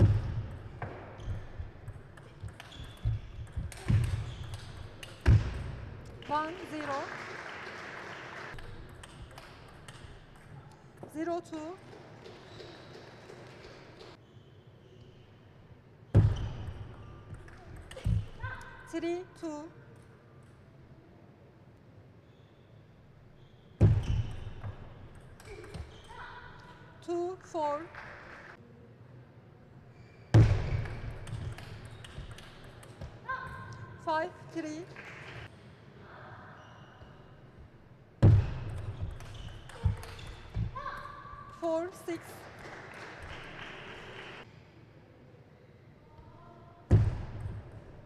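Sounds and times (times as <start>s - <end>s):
table tennis ball tapping: 0.0s - 5.4s
ping pong ball clicks: 8.6s - 10.8s.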